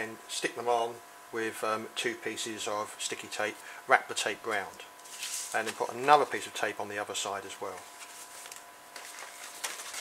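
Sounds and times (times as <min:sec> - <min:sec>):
card and tape handling noise: 0:05.0 - 0:06.4, 0:07.7 - 0:10.0.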